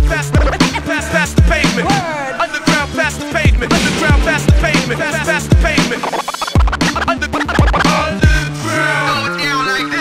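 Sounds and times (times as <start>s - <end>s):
hip hop beat: 0.0s - 8.7s
kick drum hits: 3.6s - 6.1s
record scratching: 4.7s - 7.8s.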